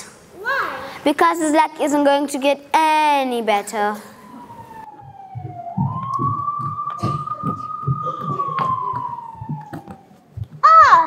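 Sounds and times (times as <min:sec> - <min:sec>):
police siren wail: 0:04.0 - 0:10.6
feet marching on wooden stage: 0:05.0 - 0:10.6.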